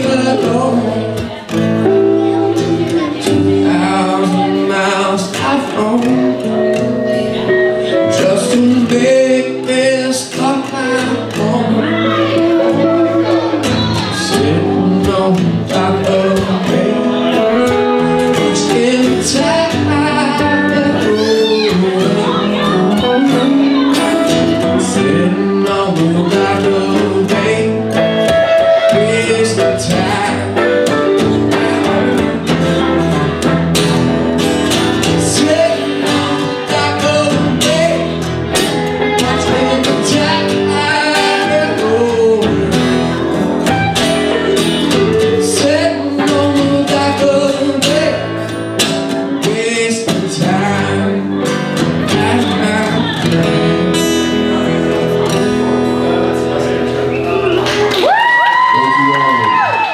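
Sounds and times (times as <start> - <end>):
man singing: 0.0 - 57.2, 58.7 - 59.7
strummed acoustic guitar: 0.0 - 58.0
electric guitar: 0.0 - 59.9.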